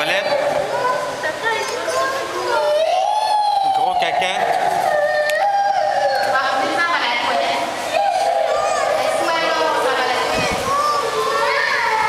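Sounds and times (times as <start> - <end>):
crowd of voices chattering: 0.0 - 12.0.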